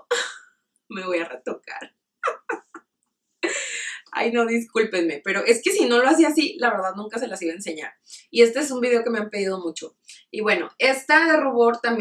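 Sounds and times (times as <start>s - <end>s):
woman laughing: 2.2s - 2.8s, 3.4s - 4.1s.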